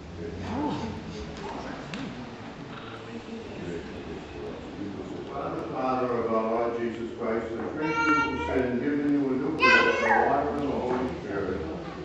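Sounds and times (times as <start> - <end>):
low murmured speech: 0.0 - 12.0.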